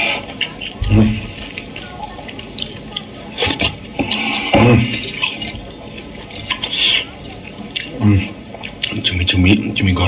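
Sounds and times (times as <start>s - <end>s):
chewing food: 0.0s - 9.6s.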